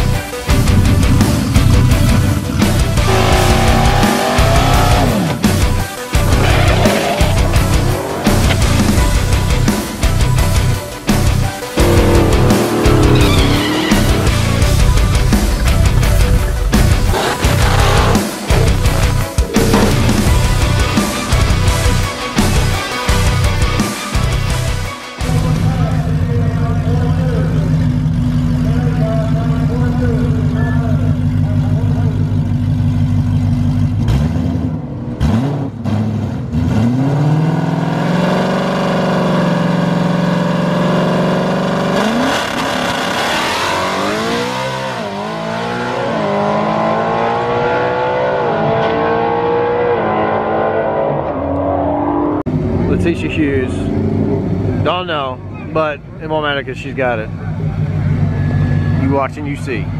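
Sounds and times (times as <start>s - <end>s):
car engine idling: 0.0s - 35.1s, 52.5s - 59.9s
car engine revving: 0.0s - 59.2s
car accelerating through gears: 3.0s - 5.6s, 34.0s - 53.0s.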